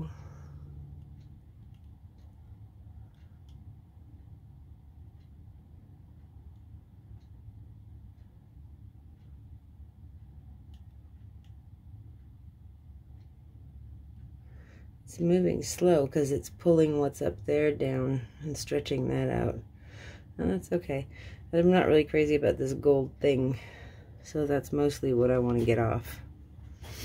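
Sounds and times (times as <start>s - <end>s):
low hum: 0.0s - 27.0s
faint clicks: 0.4s - 3.8s.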